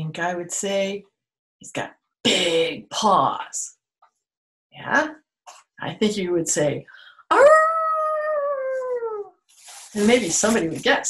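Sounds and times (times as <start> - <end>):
woman imitating a dog howl: 7.3 - 9.3.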